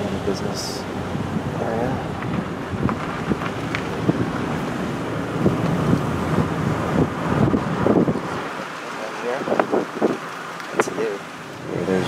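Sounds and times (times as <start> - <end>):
car road noise: 0.0 - 12.0
wind buffeting microphone: 0.8 - 12.0.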